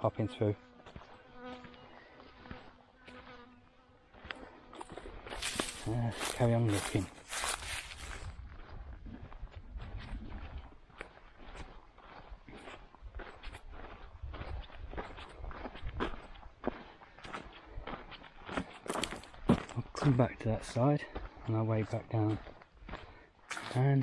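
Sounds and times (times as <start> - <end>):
footsteps on sand and leaves: 0.7 - 24.0.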